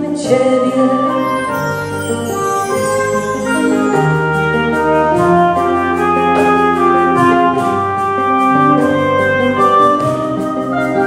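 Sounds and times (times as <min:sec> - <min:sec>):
bass guitar: 0:00.0 - 0:11.0
live band accompaniment: 0:00.0 - 0:11.0
clarinet melody: 0:00.4 - 0:11.0.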